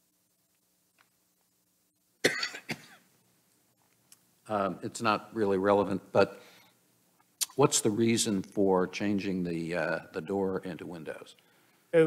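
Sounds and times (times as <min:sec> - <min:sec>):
person coughing: 0:02.2 - 0:03.0.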